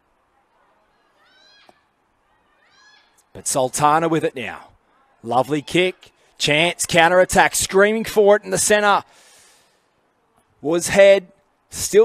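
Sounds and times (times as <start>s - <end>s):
faint high-pitched shouts: 0.5s - 3.3s.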